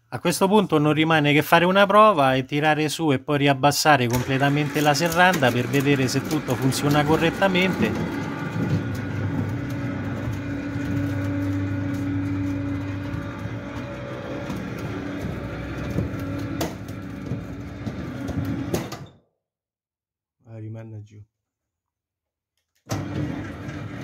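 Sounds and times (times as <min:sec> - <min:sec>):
garage shutter rattling: 0:04.0 - 0:19.1, 0:22.9 - 0:24.0.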